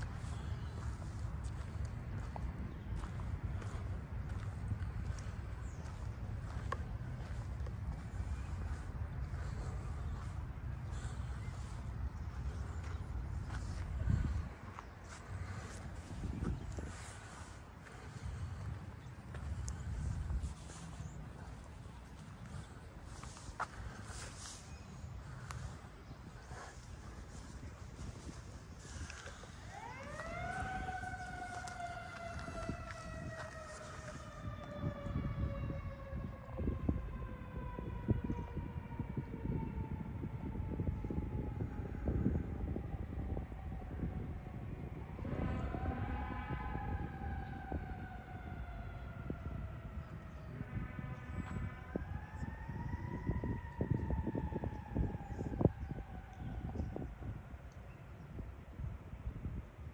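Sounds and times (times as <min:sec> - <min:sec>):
low rumbling noise: 0:00.0 - 0:57.7
siren wailing: 0:00.0 - 0:57.7.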